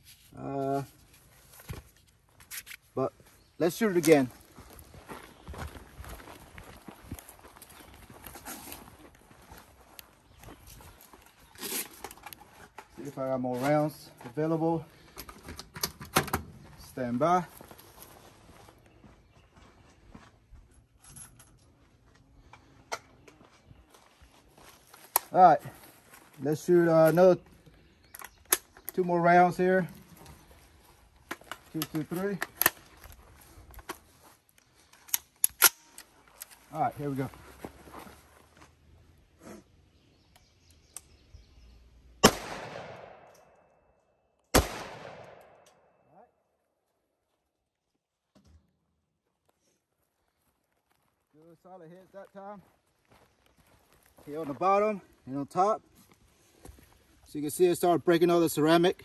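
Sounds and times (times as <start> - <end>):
rifle shots with echo: 42.2 - 43.5, 44.5 - 45.9
sharp crack: 42.2 - 43.6, 44.5 - 45.8.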